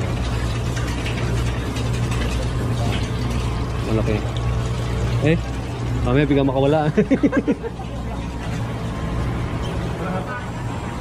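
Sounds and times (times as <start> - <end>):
low pump hum: 0.0 - 11.0
water splashing and bubbling: 0.0 - 11.0.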